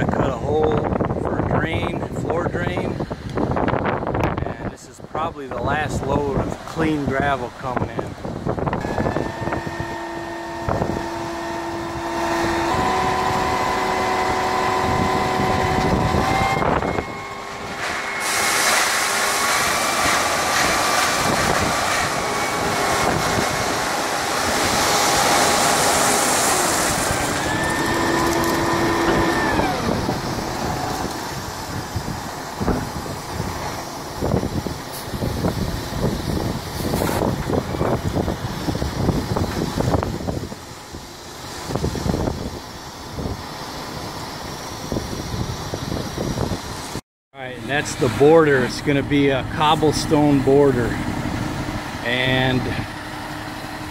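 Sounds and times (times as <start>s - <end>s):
truck engine revving: 5.8s - 46.5s, 47.4s - 53.9s.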